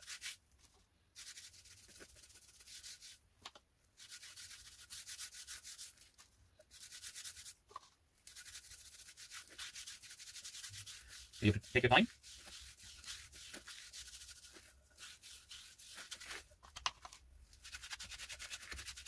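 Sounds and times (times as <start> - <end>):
hand rubbing oiled wood: 4.0 - 16.6.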